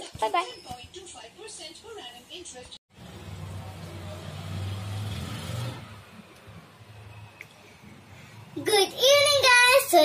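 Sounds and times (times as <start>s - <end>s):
vehicle passing by rumble: 2.9s - 7.0s.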